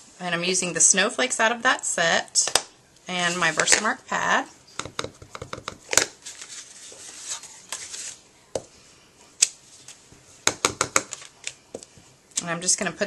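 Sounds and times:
rubber stamp tapping: 0:04.8 - 0:06.0, 0:10.5 - 0:11.2
paper rustling: 0:06.0 - 0:08.2.

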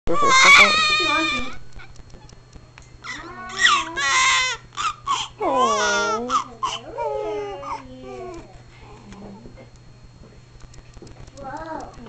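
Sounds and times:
newborn baby crying: 0:00.1 - 0:01.6, 0:03.0 - 0:08.4.

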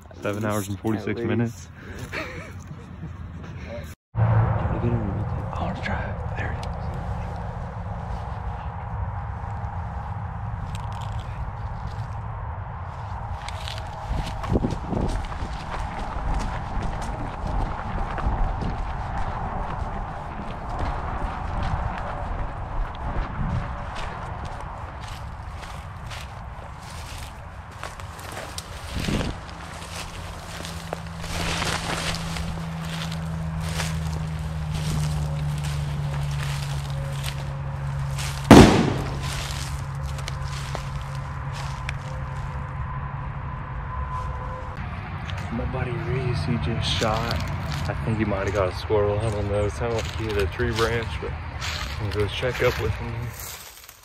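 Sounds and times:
footsteps through dry leaves: 0:13.0 - 0:22.6, 0:23.6 - 0:42.7, 0:46.9 - 0:54.0
loud gunshot: 0:38.5 - 0:39.6.

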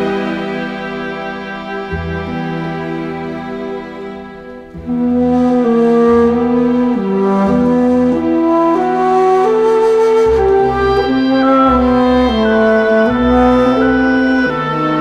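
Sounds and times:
low bass notes: 0:00.0 - 0:15.0
orchestral melody over held chords: 0:00.0 - 0:15.0.

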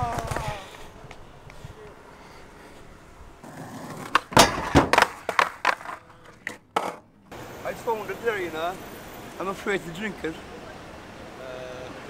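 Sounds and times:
skateboard rolling on concrete: 0:00.0 - 0:12.0
skateboard clacking on ground: 0:03.4 - 0:07.1.

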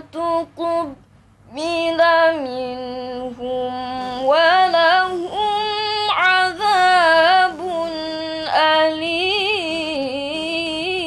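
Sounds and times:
girl reciting melodically: 0:00.0 - 0:11.0.

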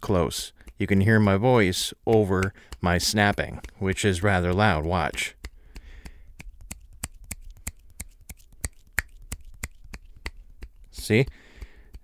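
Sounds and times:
fingers snapping: 0:02.1 - 0:04.1, 0:05.0 - 0:12.0.

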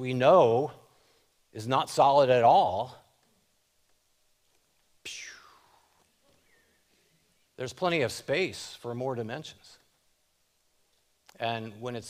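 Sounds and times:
man making breathy mouth whoosh: 0:05.1 - 0:05.9.

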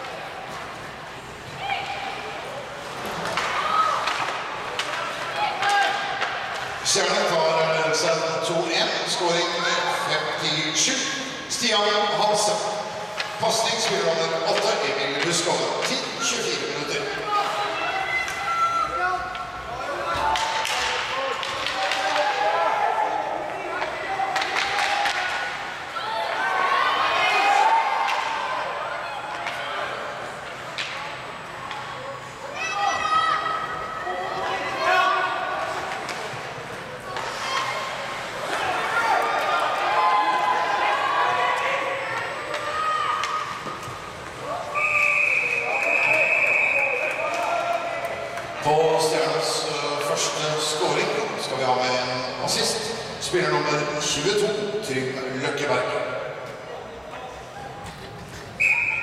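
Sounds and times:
sticks and puck hitting boards: 0:03.0 - 0:06.8, 0:20.1 - 0:22.6, 0:23.8 - 0:25.6
referee whistle blast: 0:44.7 - 0:47.1, 0:58.6 - 0:59.0.

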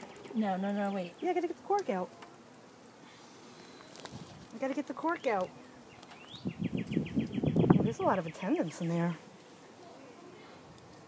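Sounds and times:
honeybees buzzing: 0:00.0 - 0:10.7.

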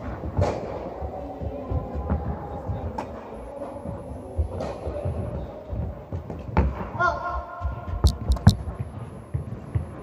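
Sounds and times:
sharp click: 0:08.0 - 0:08.6.

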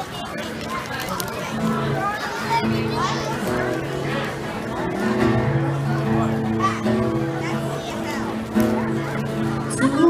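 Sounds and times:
children chattering: 0:00.0 - 0:10.0
acoustic guitar chords: 0:01.4 - 0:10.0.

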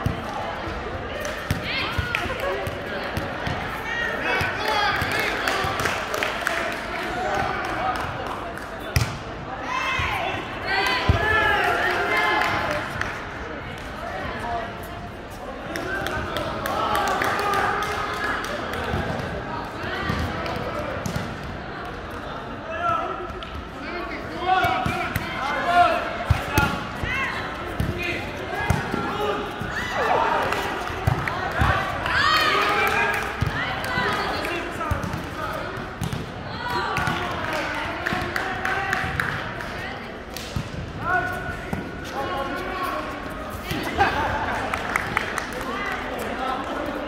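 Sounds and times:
players shouting and chatting: 0:00.0 - 0:47.0
volleyball hits and bounces: 0:27.7 - 0:29.2, 0:30.4 - 0:31.9, 0:33.2 - 0:39.4.

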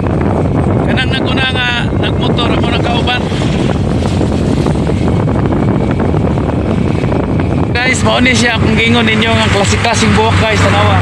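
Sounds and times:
vehicle moving along road: 0:00.0 - 0:11.0
wind rushing over microphone: 0:00.0 - 0:11.0.

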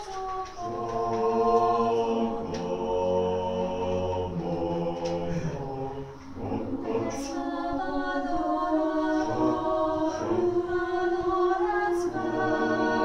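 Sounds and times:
mixed choir singing: 0:00.0 - 0:13.0.

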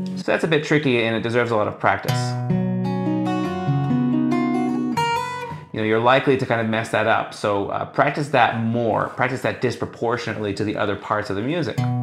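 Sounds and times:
fingerpicked acoustic guitar: 0:02.1 - 0:05.8, 0:11.8 - 0:12.0.

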